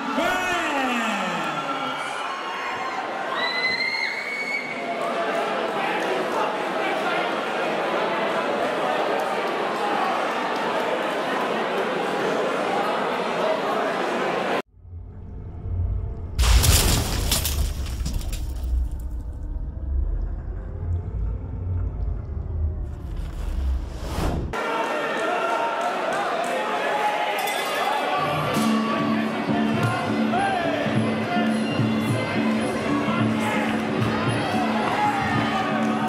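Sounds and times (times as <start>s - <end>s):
busy fight hall noise: 0.0s - 14.7s, 24.5s - 36.0s
deep rumbling: 14.7s - 24.5s
loud crash: 16.3s - 19.5s.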